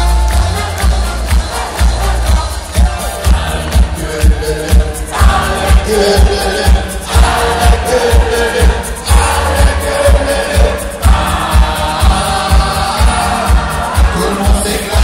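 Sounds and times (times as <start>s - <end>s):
crowd singing along: 0.0s - 15.0s
kick drum beat: 0.0s - 15.0s
live band music: 0.0s - 15.0s
person singing: 0.0s - 15.0s.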